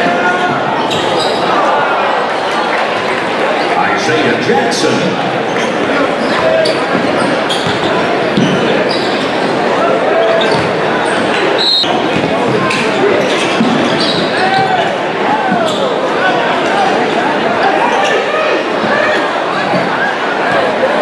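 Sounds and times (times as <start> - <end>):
sneakers squeaking: 0.0 - 1.7, 5.4 - 16.8, 17.6 - 20.7
crowd voices echoing: 0.0 - 21.0.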